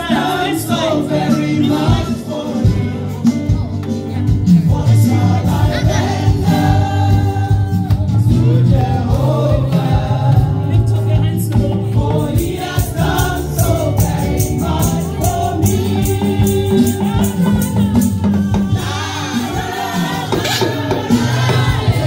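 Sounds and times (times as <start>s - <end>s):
shaker percussion: 0.0s - 22.0s
singers with band: 0.0s - 22.0s.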